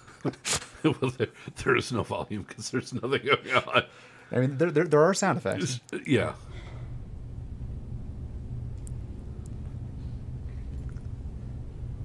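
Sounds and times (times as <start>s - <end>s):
low rumble of ambience: 6.2s - 12.0s.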